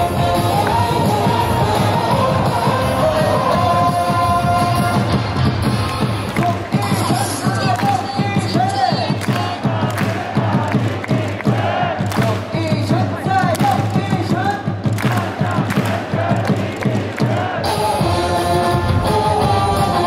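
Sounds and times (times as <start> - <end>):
cheer song over stadium speakers: 0.0 - 20.0
steady drum beat: 0.0 - 20.0
crowd chanting: 9.2 - 12.4, 15.0 - 20.0.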